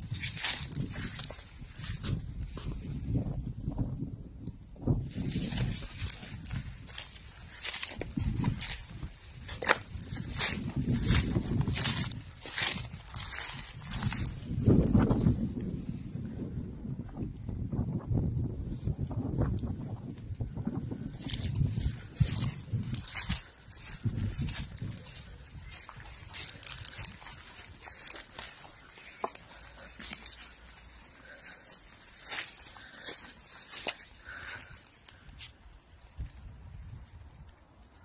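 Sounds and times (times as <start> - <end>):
footsteps rustling through grass: 0.0 - 3.1, 4.9 - 15.6, 21.0 - 37.2
low rumble on microphone: 0.0 - 34.8.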